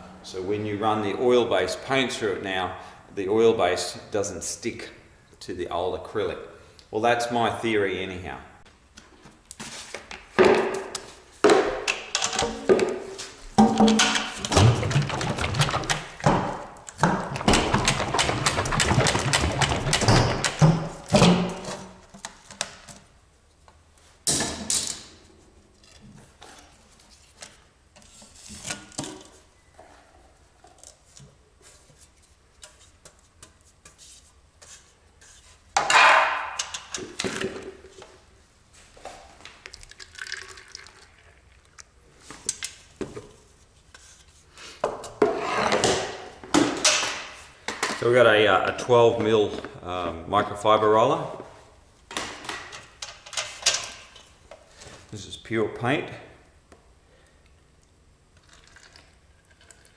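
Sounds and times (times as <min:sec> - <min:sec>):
metal paint tin knocks and scraping: 0:10.4 - 0:22.0.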